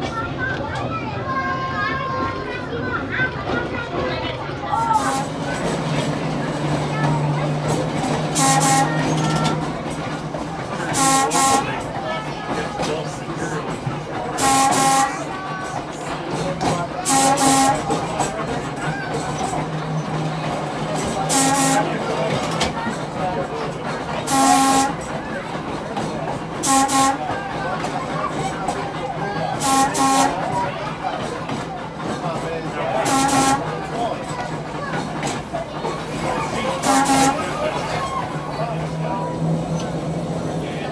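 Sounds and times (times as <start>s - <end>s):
trolley car rolling on rails: 0.0s - 40.9s
air horn blasts: 8.3s - 9.6s, 10.9s - 11.8s, 14.4s - 15.2s, 17.0s - 18.0s, 21.3s - 21.9s, 24.3s - 25.0s, 26.6s - 27.3s, 29.6s - 30.4s, 33.0s - 33.7s, 36.8s - 37.5s.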